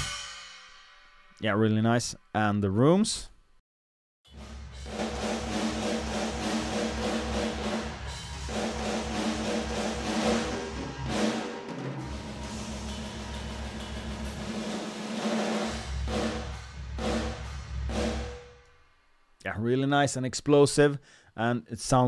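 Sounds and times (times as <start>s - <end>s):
drum kit playing metal groove: 0.0s - 1.4s, 4.3s - 18.6s
washing cymbals: 4.4s - 18.6s.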